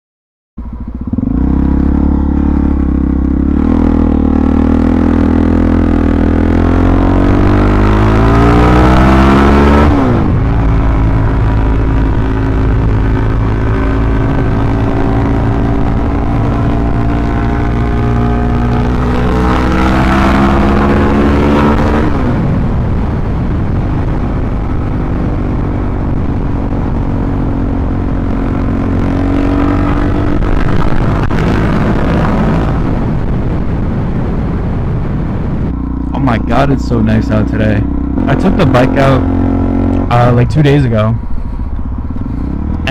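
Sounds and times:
motorcycle engine revving: 0.6 - 42.9
wind rush on microphone: 4.7 - 42.9.

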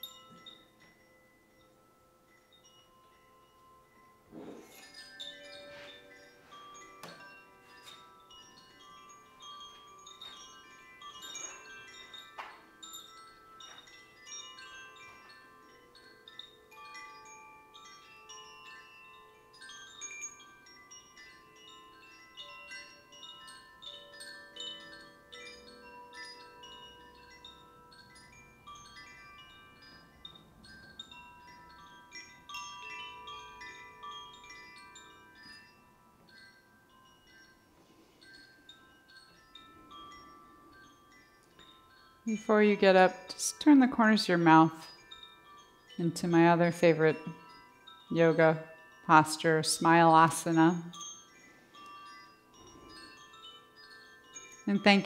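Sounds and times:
hand chimes ringing: 0.0 - 55.0.

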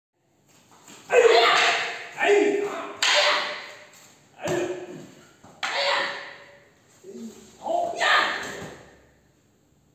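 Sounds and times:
wooden staffs clacking: 0.5 - 9.0
person shouting: 1.1 - 3.8, 5.6 - 6.6, 7.2 - 8.8.

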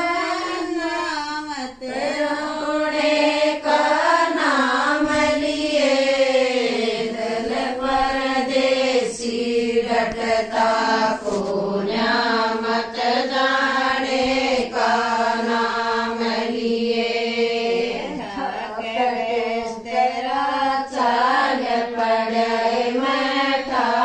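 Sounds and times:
women singing unaccompanied: 0.0 - 24.0.

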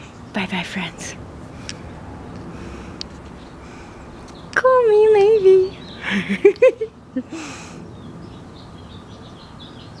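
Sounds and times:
low background noise: 0.0 - 10.0
small birds chirping: 0.0 - 10.0.

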